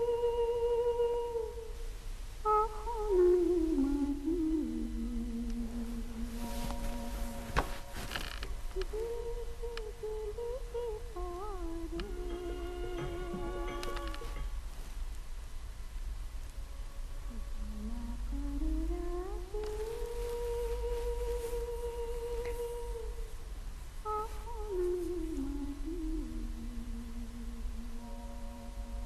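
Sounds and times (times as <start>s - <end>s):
person humming slow melody: 0.0s - 1.8s, 2.5s - 14.5s, 17.2s - 23.4s, 24.0s - 29.0s.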